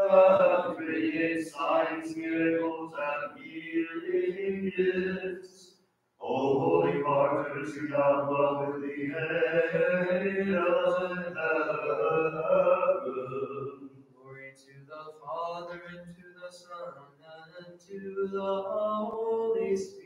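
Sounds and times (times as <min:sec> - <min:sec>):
voices singing liturgical chant: 0:00.0 - 0:05.6, 0:06.2 - 0:14.0.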